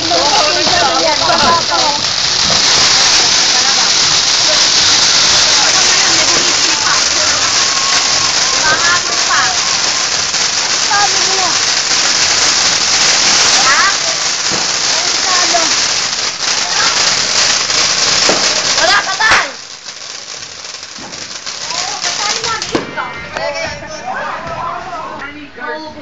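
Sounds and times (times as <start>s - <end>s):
fireworks spraying sparks hissing: 0.0s - 24.3s.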